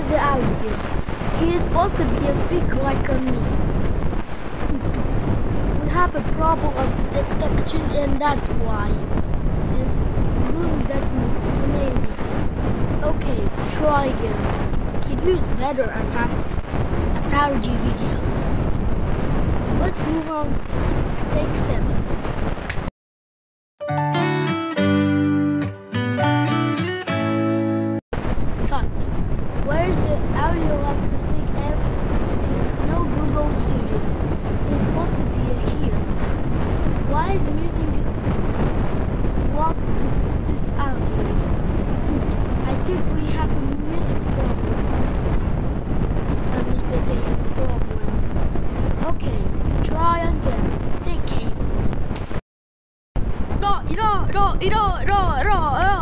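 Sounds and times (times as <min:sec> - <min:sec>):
loud steady rushing noise: 0:00.0 - 0:22.9, 0:28.2 - 0:52.4, 0:53.2 - 0:56.0
musical logo jingle: 0:23.8 - 0:28.0.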